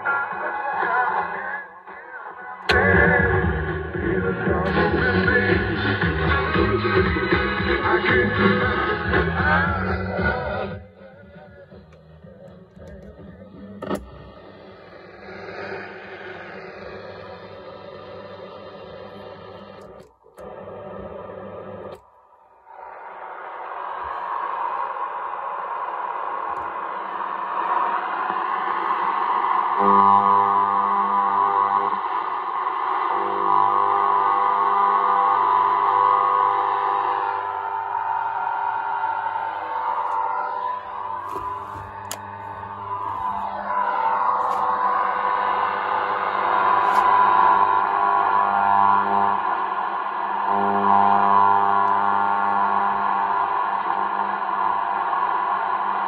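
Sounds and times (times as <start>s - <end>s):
radio static: 0.0s - 22.0s, 32.9s - 49.5s
gliding radio whistles: 9.4s - 56.0s.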